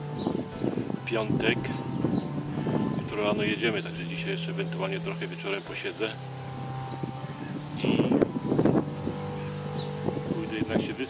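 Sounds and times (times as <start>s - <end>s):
low engine hum: 0.0s - 11.0s.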